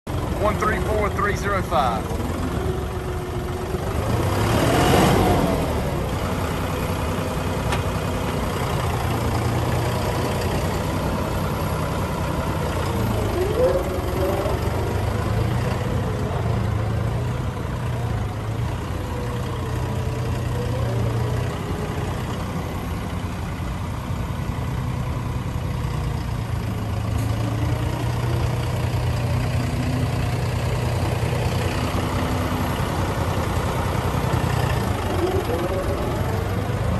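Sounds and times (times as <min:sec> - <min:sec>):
tractor diesel engine running: 0:00.0 - 0:36.9.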